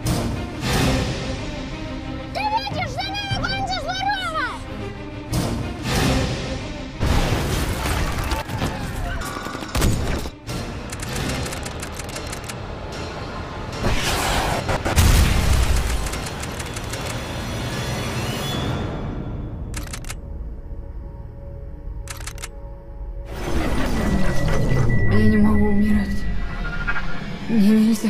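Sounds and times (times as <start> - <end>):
trailer music: 0.0 - 28.0
explosions: 13.8 - 15.8.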